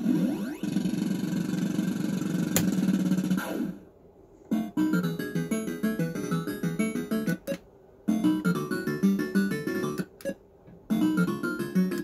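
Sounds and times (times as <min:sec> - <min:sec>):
fruit machine electronic sound effects: 0:04.5 - 0:12.0.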